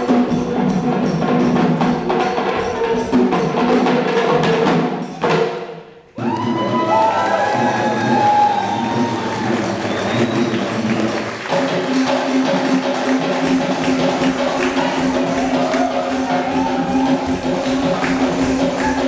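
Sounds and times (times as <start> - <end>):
fast drumming: 0.0 - 19.0.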